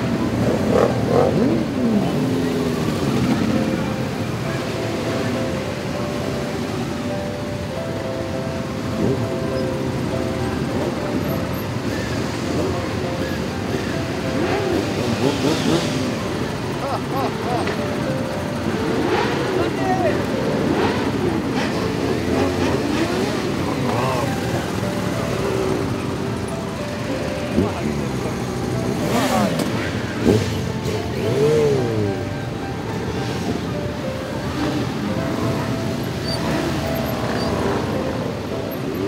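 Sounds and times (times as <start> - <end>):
crowd chatter and calling voices: 0.0 - 39.0
motorcycle engines running: 0.0 - 39.0.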